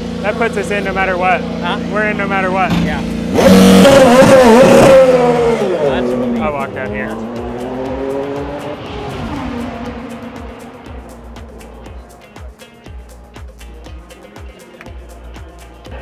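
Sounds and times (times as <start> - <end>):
race car passing at speed: 2.7 - 11.8
faint music beat: 5.0 - 16.0.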